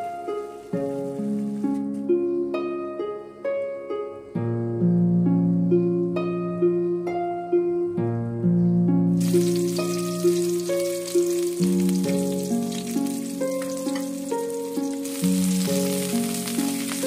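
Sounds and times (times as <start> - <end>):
plucked-string background music: 0.0 - 17.0
onion sizzling in hot oil: 9.2 - 17.0.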